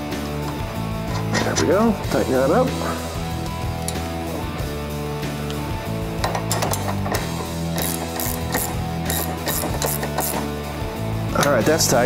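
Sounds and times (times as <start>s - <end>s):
music: 0.0s - 12.0s
socket ratchet clicking: 6.2s - 10.5s.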